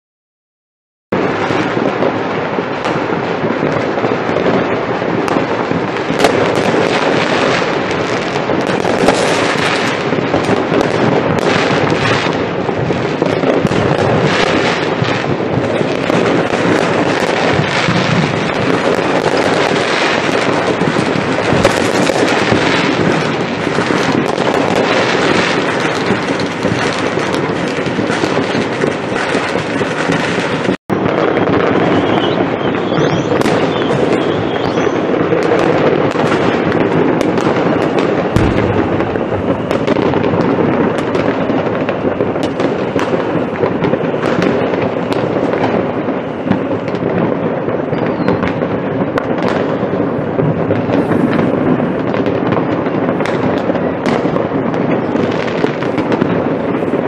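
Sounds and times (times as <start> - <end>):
fireworks crackling and banging: 1.1 - 57.0.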